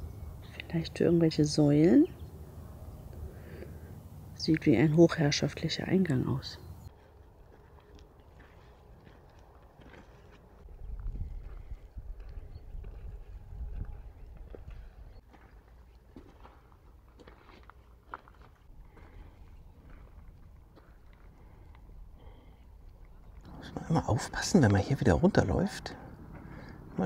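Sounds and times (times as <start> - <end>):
footsteps on gravel: 6.9 - 21.7.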